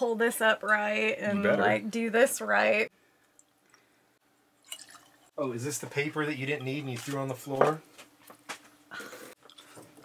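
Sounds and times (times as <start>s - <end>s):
light drips: 3.2s - 4.0s
liquid pouring into glass: 4.6s - 5.3s.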